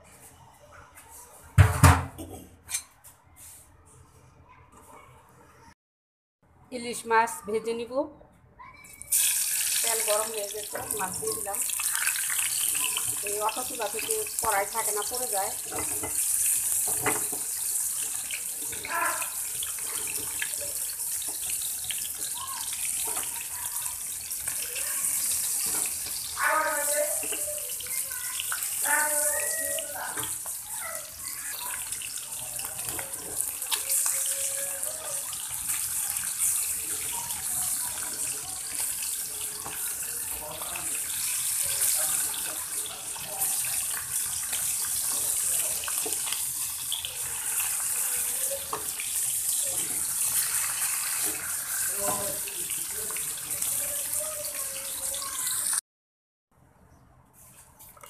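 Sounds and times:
fish sizzling in hot oil: 0:09.0 - 0:55.8.

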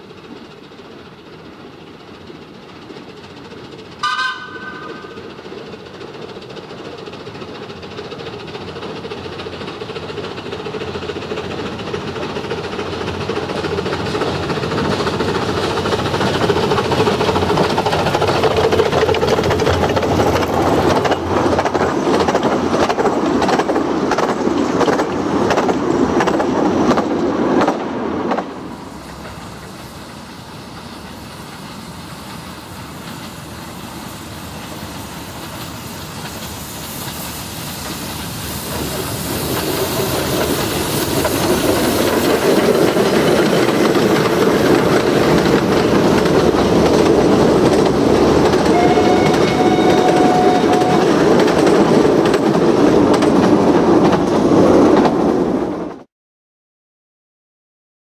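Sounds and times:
wheels clicking over rail joints: 0:00.0 - 0:33.6, 0:34.6 - 0:56.0
distant train: 0:00.0 - 0:56.1
steam train passing: 0:00.0 - 0:56.1.

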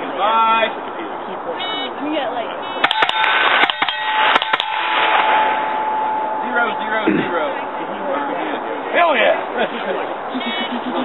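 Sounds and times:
steel targets ringing: 0:02.6 - 0:09.7
rifle shots: 0:02.8 - 0:06.0.

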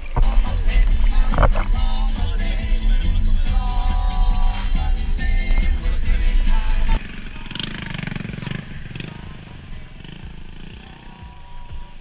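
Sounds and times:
music with heavy bass beat: 0:00.0 - 0:12.0
street noise: 0:00.0 - 0:12.0.

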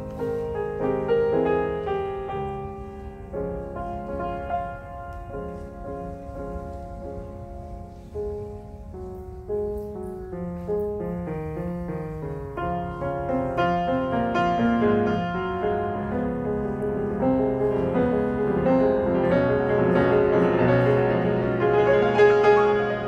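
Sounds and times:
solo classical piano: 0:00.0 - 0:23.0.

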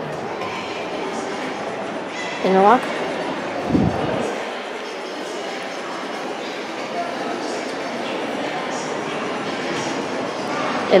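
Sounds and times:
indoor public space background noise: 0:00.0 - 0:11.0.

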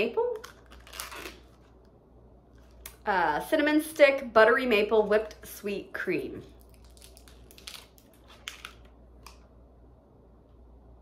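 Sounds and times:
plastic packaging crackling: 0:00.2 - 0:01.9, 0:06.6 - 0:09.4.

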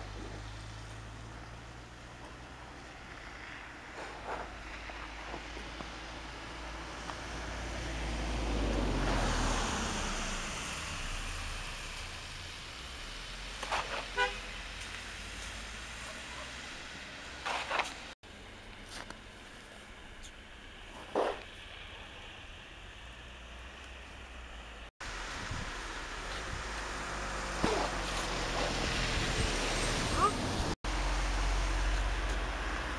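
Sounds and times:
car passing on snowy road: 0:00.0 - 0:32.9.

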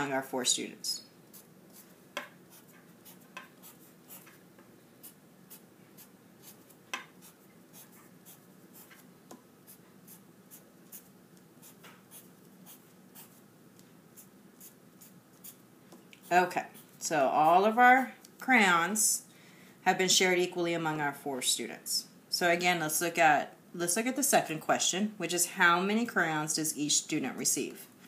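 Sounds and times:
marker drawing on paper: 0:01.3 - 0:04.4, 0:05.0 - 0:13.4.

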